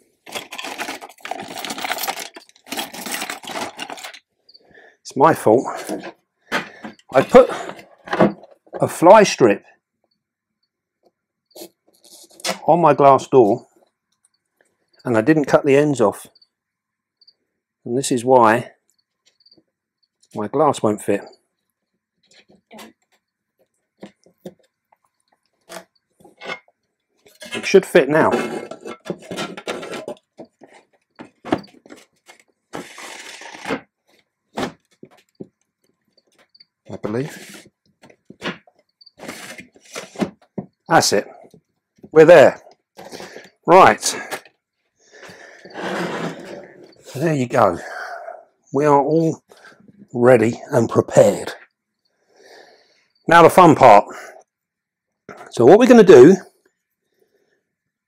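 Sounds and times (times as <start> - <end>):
hard objects scraping and clattering: 0.2 - 4.3, 24.0 - 41.7, 45.2 - 47.2.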